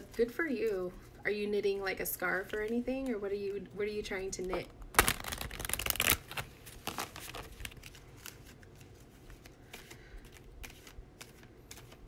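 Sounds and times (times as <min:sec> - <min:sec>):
cards clicking and rustling: 0:05.0 - 0:12.0.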